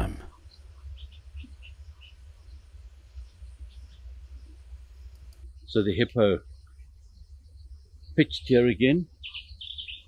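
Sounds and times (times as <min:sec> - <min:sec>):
bird chirping: 0:00.0 - 0:10.0
low steady rumble: 0:00.0 - 0:10.0.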